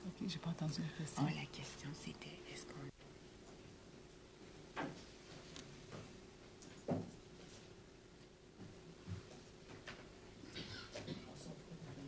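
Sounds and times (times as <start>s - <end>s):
women whispering: 0.0s - 3.0s.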